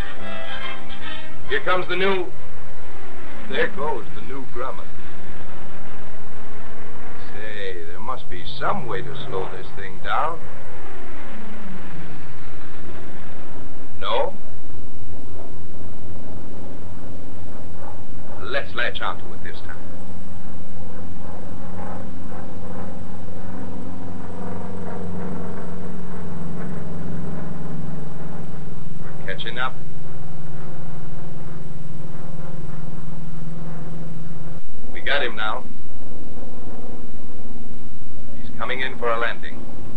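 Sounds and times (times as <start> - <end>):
high wavering sound: 0.0 - 39.9
old film soundtrack hiss: 0.0 - 39.9
piston aircraft engine droning: 0.0 - 39.9
propeller plane flying overhead: 0.0 - 39.9.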